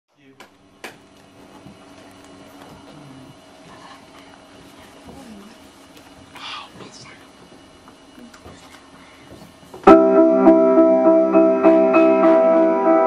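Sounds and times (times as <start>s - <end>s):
steady hum: 0.1s - 13.0s
people talking: 5.1s - 5.6s.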